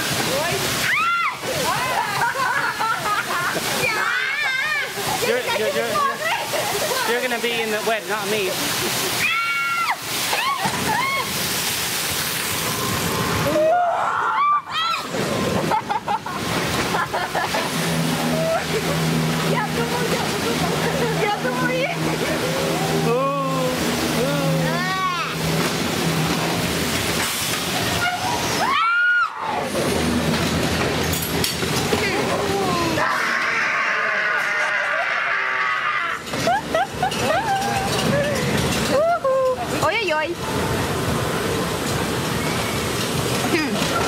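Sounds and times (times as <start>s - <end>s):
water rushing and sloshing: 0.0s - 44.0s
riders laughing: 1.6s - 4.2s, 5.0s - 7.1s, 15.5s - 19.8s, 34.6s - 39.7s
riders shrieking: 9.2s - 11.4s, 27.9s - 29.8s, 32.6s - 36.6s
steady low drone: 15.2s - 28.6s.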